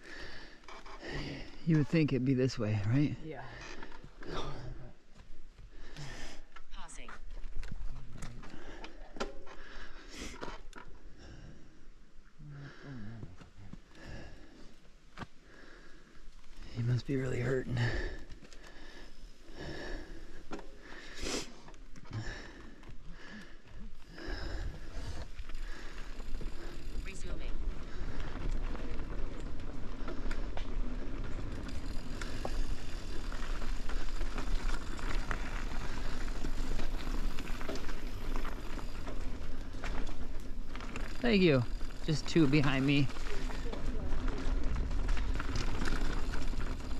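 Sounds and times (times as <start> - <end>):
bike tyres rolling on dirt: 0.0 - 46.9.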